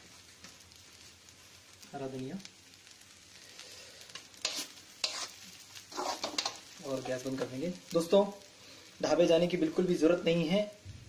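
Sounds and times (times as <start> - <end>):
faint frying sizzle: 0.0 - 11.0
spatula scraping rice in wok: 4.0 - 7.2.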